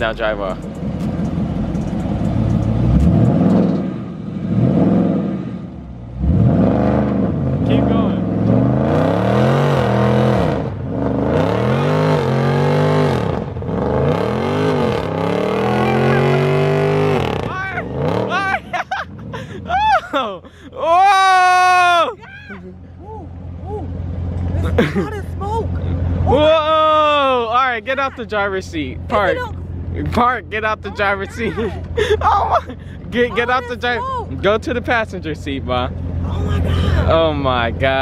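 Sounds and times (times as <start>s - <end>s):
car engine revving hard: 2.5s - 19.4s
high wavering cries: 19.6s - 24.0s.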